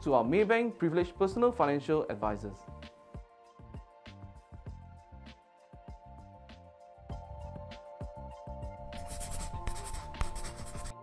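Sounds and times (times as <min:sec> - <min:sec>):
background music with sustained tones: 0:00.0 - 0:11.0
pen scribbling: 0:09.0 - 0:11.0.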